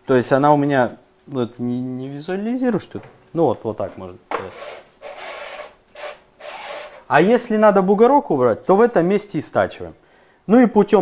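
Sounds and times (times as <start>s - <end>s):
grinding cup rasping on lapping surface: 3.8s - 7.1s.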